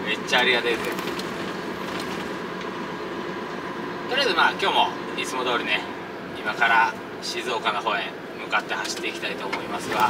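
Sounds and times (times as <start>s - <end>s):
truck engine and road noise: 0.0s - 10.0s.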